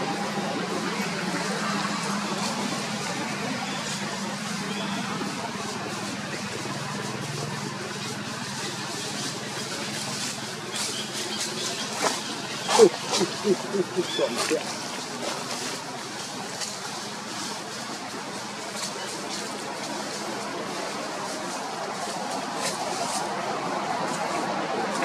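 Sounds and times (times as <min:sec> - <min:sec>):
indistinct voices: 0:00.0 - 0:25.0.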